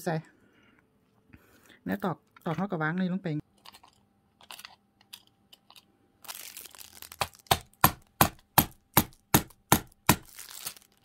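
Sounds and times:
handling rustle: 0:10.3 - 0:11.0.

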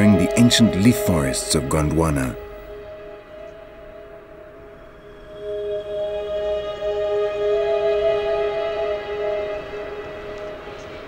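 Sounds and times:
soft ambient music: 0:00.0 - 0:11.0.

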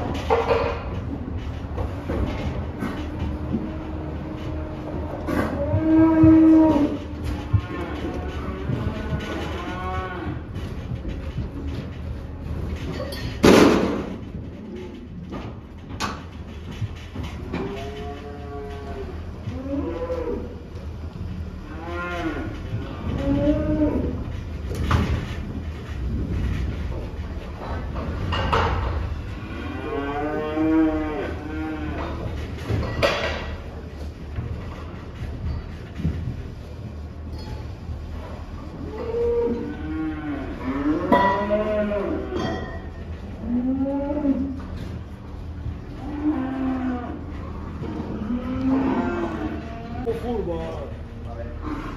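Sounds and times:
calves mooing: 0:02.6 - 0:11.2, 0:17.4 - 0:20.6, 0:21.5 - 0:25.4, 0:28.6 - 0:33.6, 0:38.8 - 0:45.0, 0:45.7 - 0:50.2.

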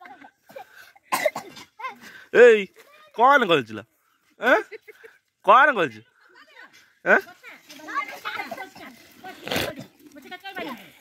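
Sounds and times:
young children chattering: 0:07.3 - 0:11.0.

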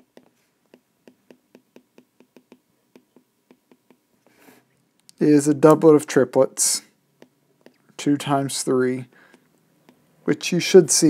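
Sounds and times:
stylus tapping on tablet: 0:00.0 - 0:04.1, 0:07.2 - 0:07.8.

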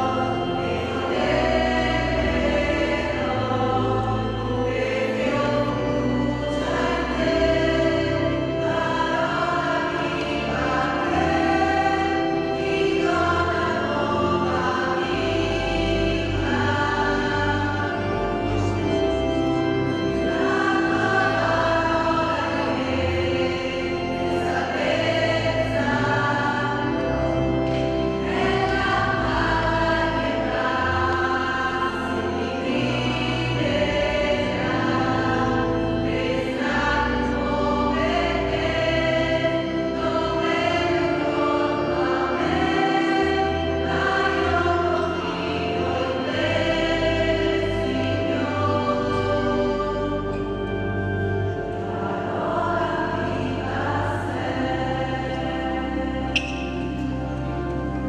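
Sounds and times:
choir singing a hymn: 0:00.0 - 0:58.0
low held instrumental notes: 0:00.0 - 0:58.0.

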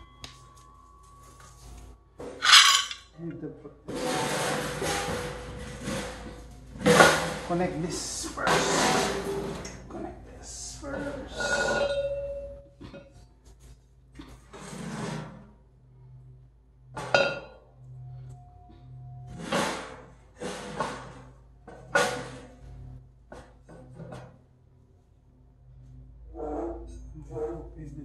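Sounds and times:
metal tubes clanking and scraping: 0:02.3 - 0:03.2, 0:03.9 - 0:09.7, 0:10.9 - 0:13.2
metal clank ringing: 0:02.4 - 0:03.0.

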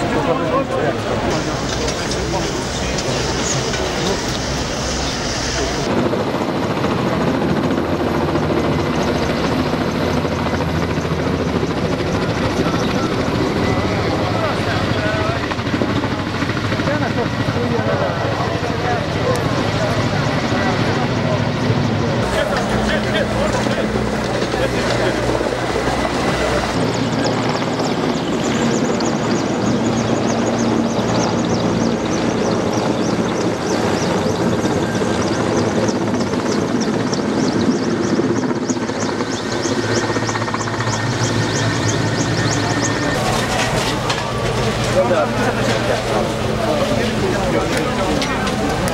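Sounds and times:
crowd voices: 0:00.0 - 0:09.0, 0:09.7 - 0:48.9
helicopter rotor and engine: 0:00.0 - 0:48.9.

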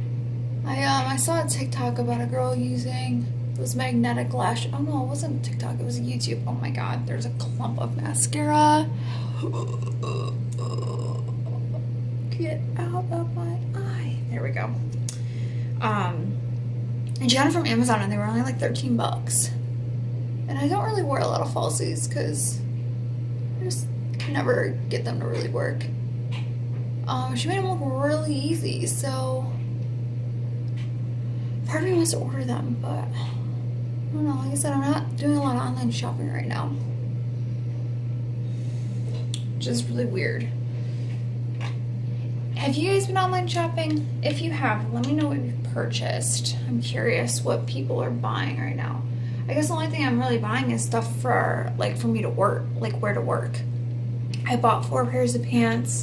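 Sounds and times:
steady low hum: 0:00.0 - 0:56.0
woman's short vocal sounds: 0:09.4 - 0:11.8.

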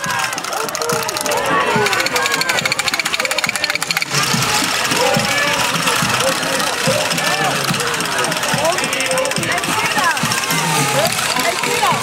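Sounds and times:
many voices talking and calling: 0:00.0 - 0:12.0
costume bells rattling and jingling: 0:00.2 - 0:12.0.

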